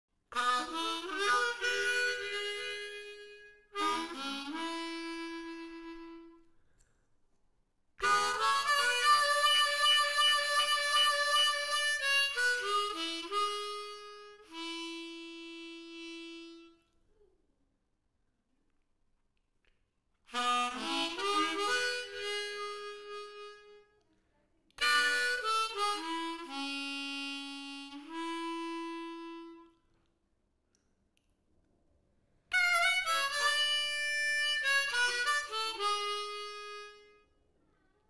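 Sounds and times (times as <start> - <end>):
solo harmonica tune: 0.3 - 6.7, 8.0 - 17.0, 20.3 - 24.0, 24.8 - 29.9, 32.5 - 37.3.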